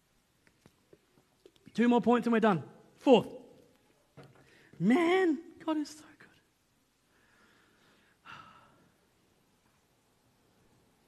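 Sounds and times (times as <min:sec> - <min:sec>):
man sighing: 0:08.2 - 0:08.9.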